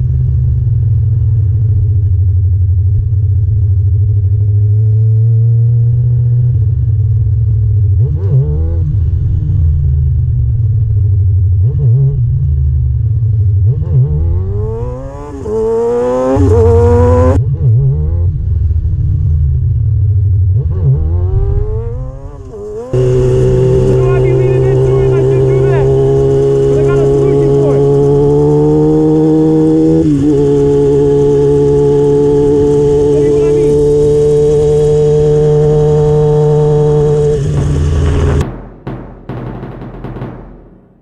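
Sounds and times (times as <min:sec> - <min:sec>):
motorcycle engine revving: 0:07.5 - 0:10.0, 0:11.6 - 0:18.5, 0:20.5 - 0:40.9.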